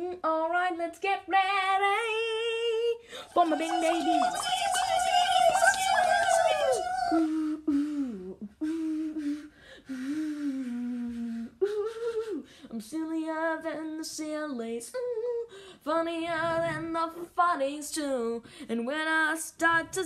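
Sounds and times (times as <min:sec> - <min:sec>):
person humming: 0:03.3 - 0:12.4.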